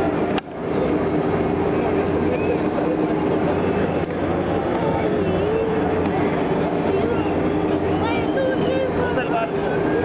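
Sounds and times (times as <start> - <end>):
crowd voices: 0.0 - 10.0
ride machinery hum: 0.0 - 10.0.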